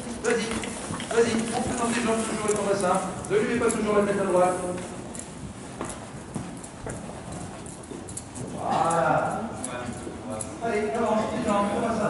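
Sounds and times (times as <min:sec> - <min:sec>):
horse trotting on sand: 0:00.0 - 0:10.9.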